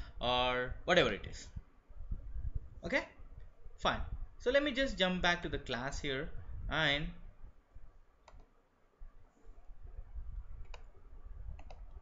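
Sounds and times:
computer mouse clicks: 8.2 - 8.5, 10.6 - 10.9, 11.5 - 12.0.

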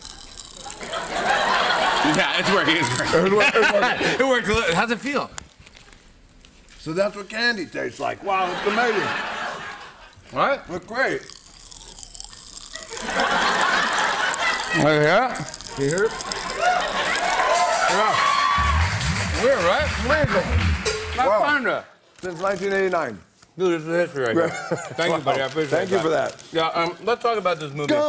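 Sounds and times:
popping candy crackling in mouth: 0.0 - 3.3, 10.9 - 19.2.

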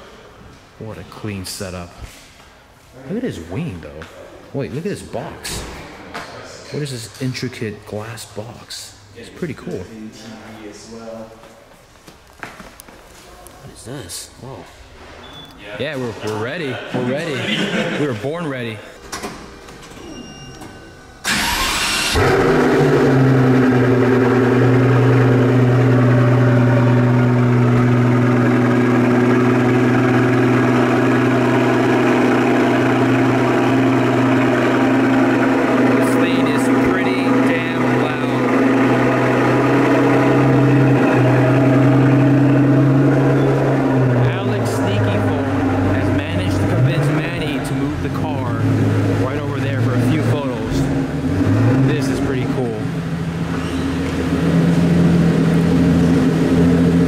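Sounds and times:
car engine starting and idling: 17.1 - 57.0.

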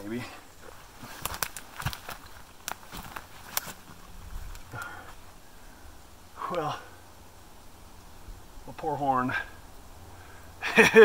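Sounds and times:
footsteps scrambling down rocky slope: 0.0 - 5.3
clicks and knocks of rock and sticks: 0.6 - 5.2.

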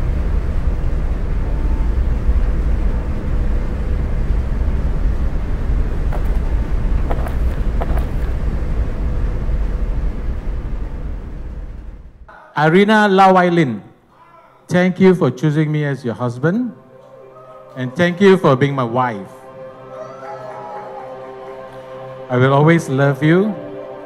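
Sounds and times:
low rumble of city ambience: 0.0 - 12.3.

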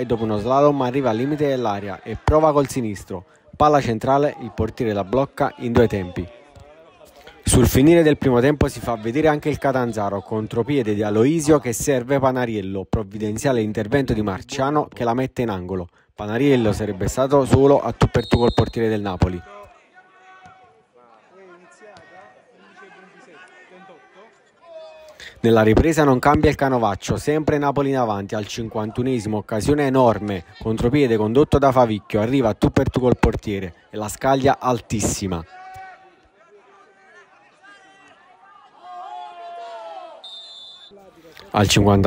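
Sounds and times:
people shouting on a field: 0.0 - 7.6, 18.0 - 25.1, 35.4 - 41.1
people shouting outdoors: 35.4 - 41.0.

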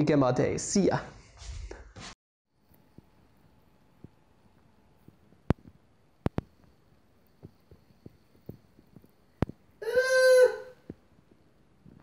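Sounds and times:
cat calling: 9.8 - 10.8.

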